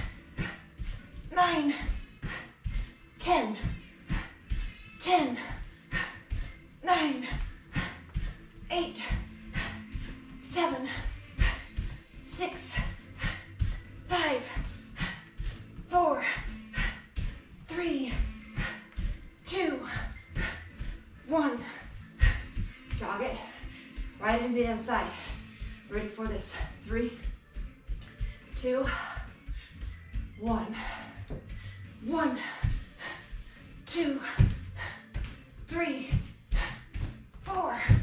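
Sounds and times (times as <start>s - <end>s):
background music: 0.0s - 38.0s
bare feet thudding on mat: 33.9s - 38.0s.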